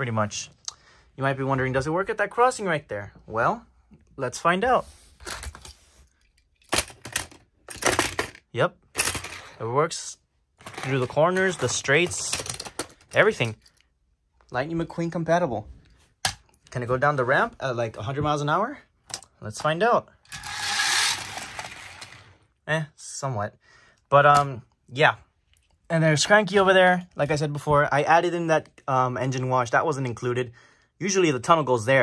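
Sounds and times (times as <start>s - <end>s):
toy car rattling on plastic track: 6.7s - 8.4s, 9.0s - 9.5s, 20.3s - 22.3s
toy car rolling on plastic track: 20.3s - 22.4s.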